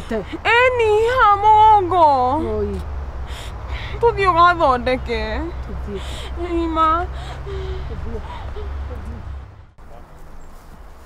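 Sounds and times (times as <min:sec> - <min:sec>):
low steady hum: 0:00.0 - 0:10.0
woman vocalising: 0:05.8 - 0:09.4
soft breathy sounds: 0:07.1 - 0:09.7.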